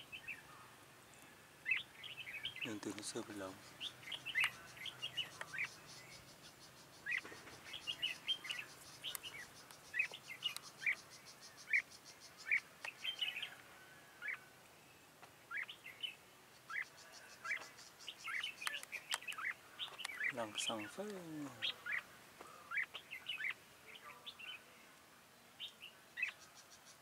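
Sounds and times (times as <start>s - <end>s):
birds chirping: 0.0s - 24.9s, 25.5s - 27.0s.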